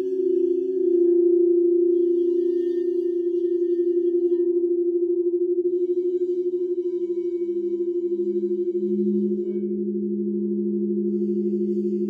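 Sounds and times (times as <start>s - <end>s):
crystal singing bowls ringing: 0.0s - 12.0s.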